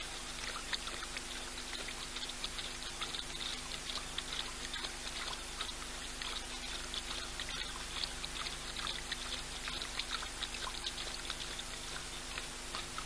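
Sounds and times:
faint steady hum: 0.0s - 13.0s
lion lapping water: 0.0s - 13.0s.

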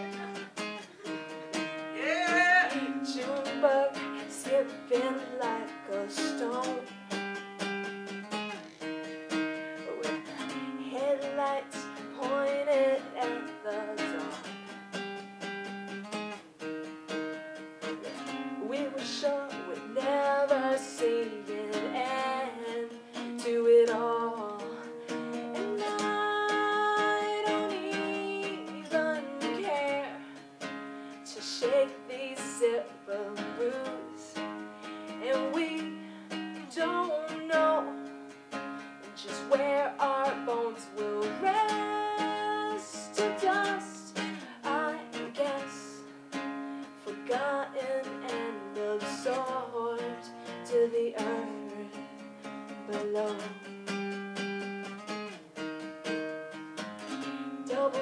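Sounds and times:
woman singing: 0.0s - 7.3s, 9.6s - 14.8s, 17.8s - 53.8s, 57.0s - 58.0s
acoustic guitar strumming: 0.0s - 58.0s.

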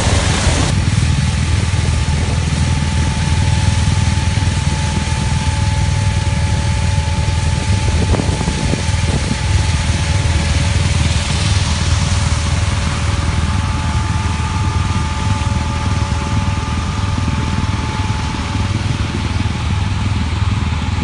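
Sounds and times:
thin steady whine: 0.0s - 21.0s
tractor engine running: 0.0s - 21.0s.

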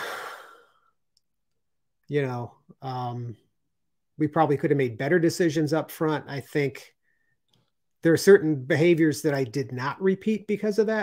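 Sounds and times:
man sighing: 0.0s - 0.9s.

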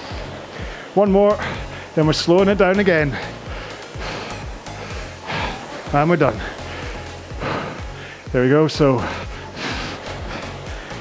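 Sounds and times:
rowing machine flywheel whooshing: 0.0s - 8.0s
background music with steady beat: 0.0s - 11.0s.

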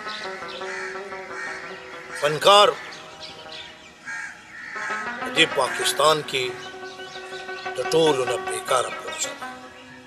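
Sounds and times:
crow calling: 0.0s - 10.0s
soft background music: 0.0s - 10.0s.

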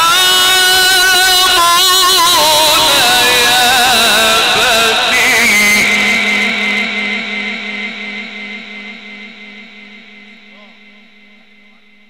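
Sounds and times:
amplified chanted recitation: 0.0s - 12.0s
faint steady tone: 7.5s - 12.0s.

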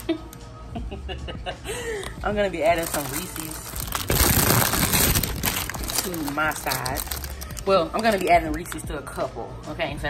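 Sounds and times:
plastic candy wrapper crinkling: 2.6s - 8.9s.

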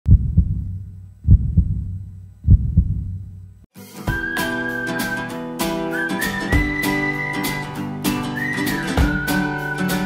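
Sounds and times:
heartbeat thumps: 0.1s - 3.6s
low hum: 0.1s - 3.7s
music: 3.7s - 10.0s.

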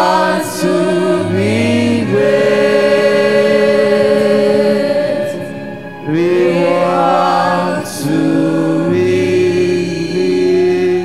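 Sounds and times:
gospel choir singing: 0.0s - 11.0s
lead singer on microphone: 0.0s - 11.0s.

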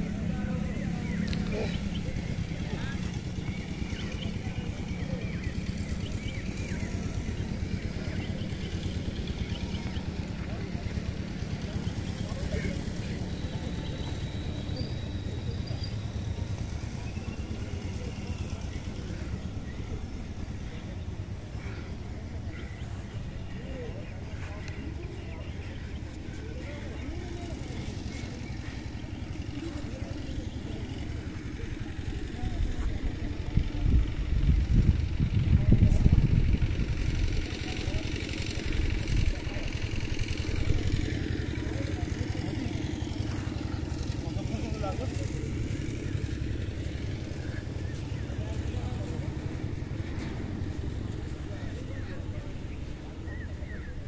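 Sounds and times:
distant indistinct voices: 0.0s - 54.0s
steady low rumble: 0.0s - 54.0s.

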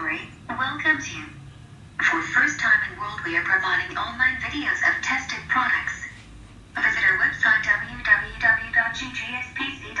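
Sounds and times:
person speaking: 2.0s - 10.0s.

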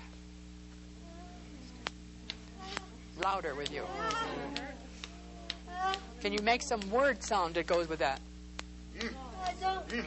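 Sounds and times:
steady low hum: 0.0s - 10.0s
people whimpering: 1.0s - 6.4s, 8.9s - 10.0s.

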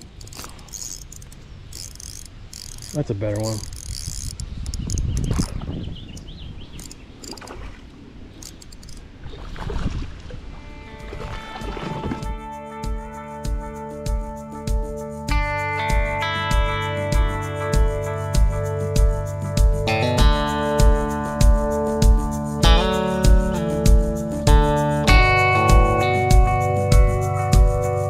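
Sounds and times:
water around a kayak: 0.0s - 12.5s
wind: 0.0s - 28.0s
music with beat and guitar: 10.9s - 28.0s.

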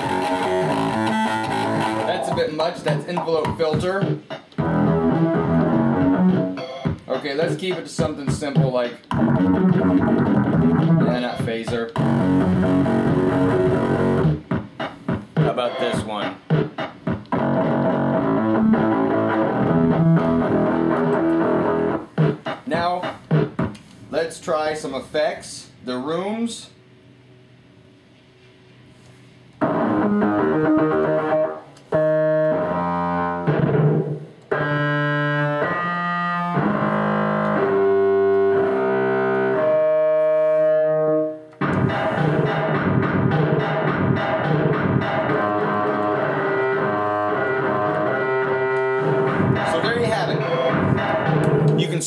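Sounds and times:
keyboard melody with amp tone: 0.0s - 23.9s, 29.6s - 51.9s
electronic keyboard with reverb: 34.5s - 52.0s.

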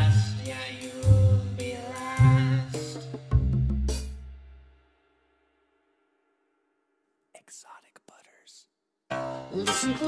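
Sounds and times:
person whispering: 7.3s - 8.8s.

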